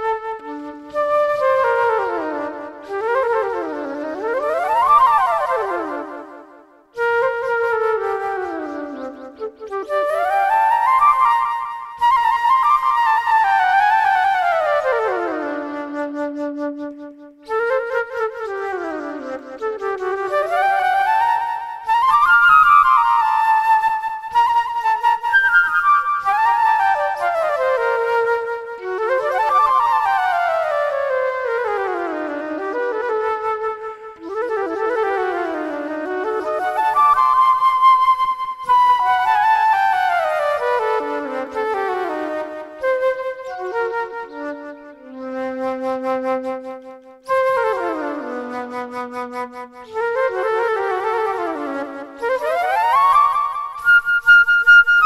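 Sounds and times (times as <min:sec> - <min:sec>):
solo flute improvising: 0:00.0 - 0:55.0.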